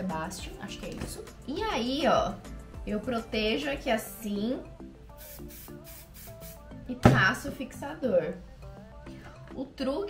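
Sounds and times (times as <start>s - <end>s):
hairspray hissing bursts: 5.2s - 6.6s.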